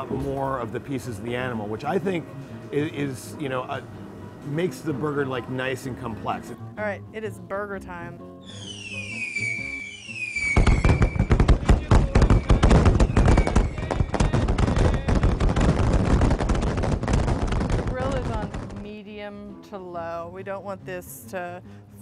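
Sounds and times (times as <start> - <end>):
background music: 0.0 - 15.6, 17.8 - 22.0
firework whistles falling: 8.4 - 17.6
firework crackle and bangs: 8.8 - 19.0.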